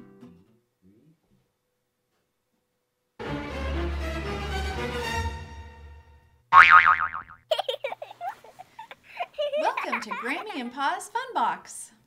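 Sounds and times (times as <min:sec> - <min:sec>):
cartoon boing sound effect: 0:06.6 - 0:07.4.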